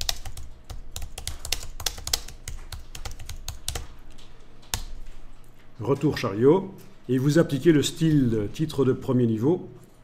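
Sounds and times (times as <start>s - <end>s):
computer keyboard typing: 0.0s - 5.3s.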